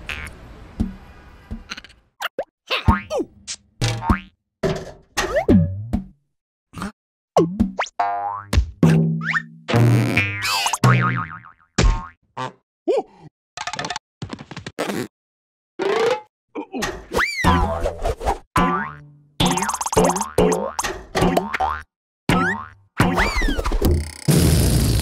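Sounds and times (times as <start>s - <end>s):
rubber balloon boings and squeaks: 17.0s - 18.0s, 22.3s - 25.0s.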